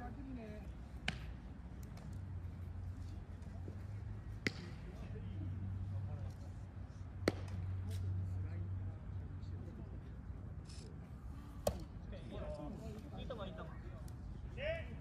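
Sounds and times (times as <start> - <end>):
faint distant voices: 0.0 - 15.0
baseball smacks: 1.0 - 2.2, 4.3 - 5.0, 7.2 - 8.0, 11.6 - 11.9.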